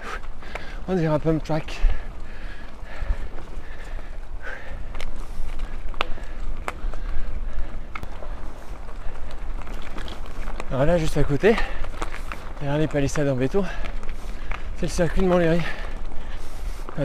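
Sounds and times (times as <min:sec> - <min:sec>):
bike rattling over bumps: 0:00.0 - 0:17.0
tyres rumbling on dirt trail: 0:00.0 - 0:17.0.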